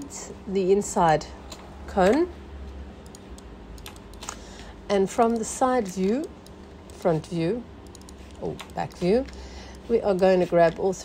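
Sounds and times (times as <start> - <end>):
keyboard and mouse clicks: 3.0 - 4.4, 5.2 - 7.0, 7.8 - 9.4.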